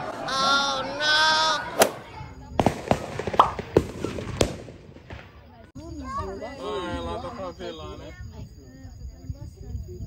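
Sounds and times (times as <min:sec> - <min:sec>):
sharp crack: 0:01.7 - 0:05.4
firework pops and bangs: 0:01.8 - 0:05.5.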